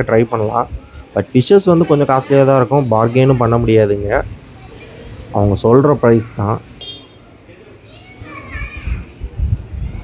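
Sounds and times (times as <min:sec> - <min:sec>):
chatter of voices: 0:00.0 - 0:10.0
child's high voice: 0:07.8 - 0:10.0.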